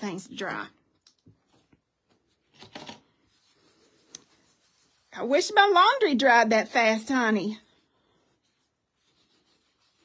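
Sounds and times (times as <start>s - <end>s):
soft rustle of handling: 1.1s - 5.4s, 7.5s - 10.0s.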